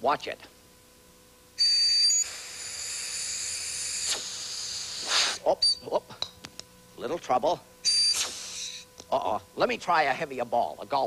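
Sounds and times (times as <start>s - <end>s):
compressed air hissing: 2.0s - 5.5s, 7.9s - 8.9s.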